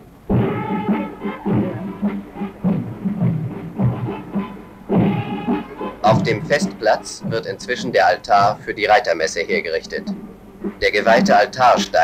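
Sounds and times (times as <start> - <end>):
drums beating steadily: 0.0 - 12.0
marching band playing: 0.0 - 12.0.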